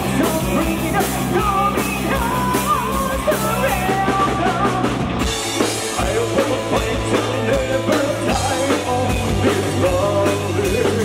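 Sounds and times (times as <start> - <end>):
metal band playing: 0.0 - 11.0.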